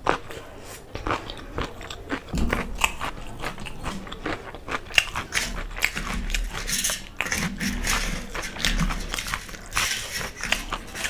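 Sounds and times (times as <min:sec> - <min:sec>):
crunchy food chewing: 0:00.0 - 0:11.0.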